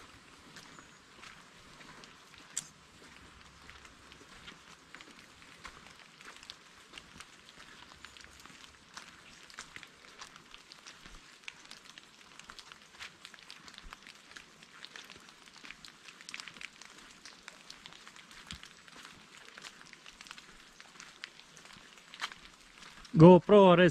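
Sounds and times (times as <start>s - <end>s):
light rain patter: 0.0s - 23.9s.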